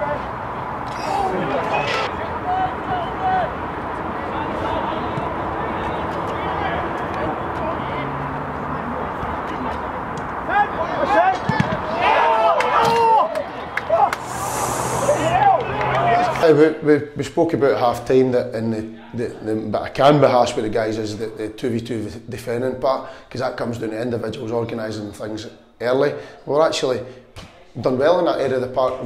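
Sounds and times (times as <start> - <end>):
players shouting: 0.0 - 16.6
steady background noise: 0.0 - 28.9.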